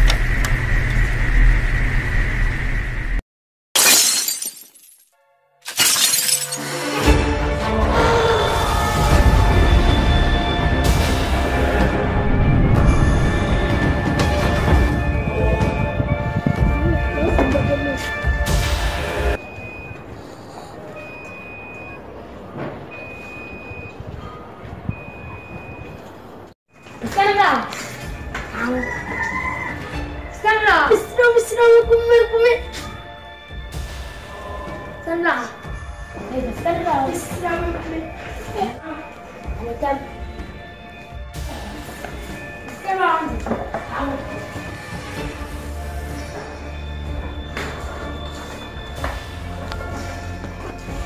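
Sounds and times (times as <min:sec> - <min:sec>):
low hum: 0:00.0 - 0:03.2
loud music: 0:06.7 - 0:19.4.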